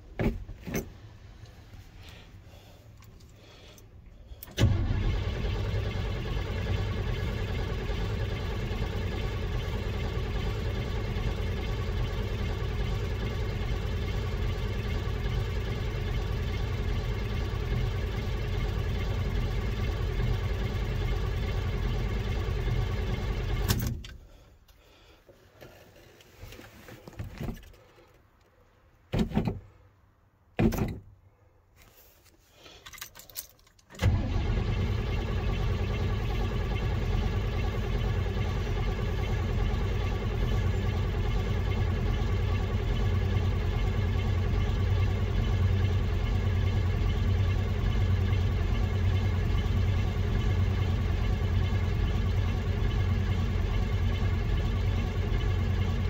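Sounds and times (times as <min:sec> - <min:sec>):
starter motor cranking engine: 0:04.4 - 0:23.9, 0:33.9 - 0:56.0.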